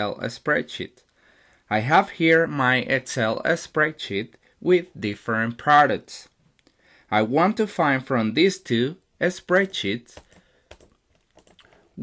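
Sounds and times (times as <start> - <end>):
computer keyboard clicks: 9.6 - 11.8.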